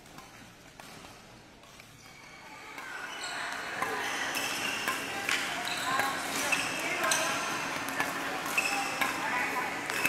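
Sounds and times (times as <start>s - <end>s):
rackets hitting shuttlecocks: 2.7s - 10.0s.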